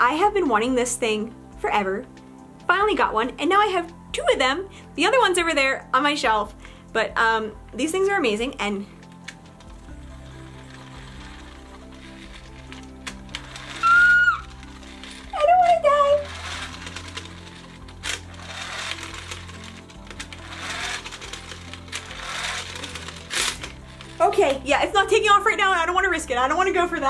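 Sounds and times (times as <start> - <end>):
background music: 0.0 - 27.0
pull-cord mechanism whirring and rattling: 9.0 - 25.4.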